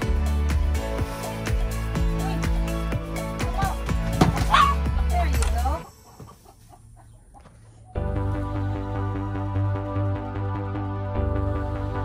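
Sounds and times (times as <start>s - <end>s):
background music: 0.0s - 7.3s, 7.9s - 12.0s
chickens clucking: 5.8s - 8.0s.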